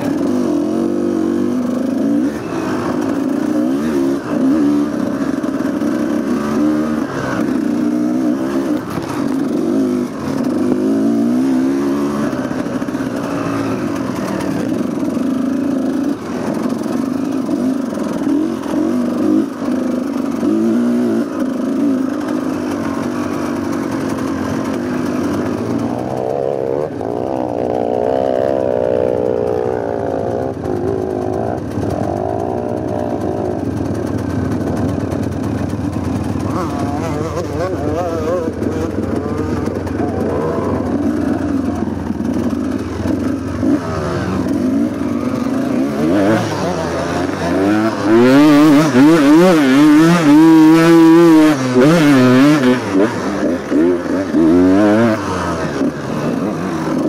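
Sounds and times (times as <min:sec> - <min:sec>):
dirt bike engine revving: 0:00.0 - 0:57.0.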